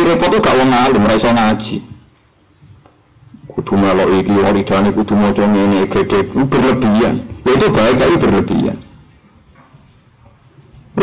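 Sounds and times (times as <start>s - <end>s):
man lecturing: 0.0s - 2.0s, 3.4s - 9.0s.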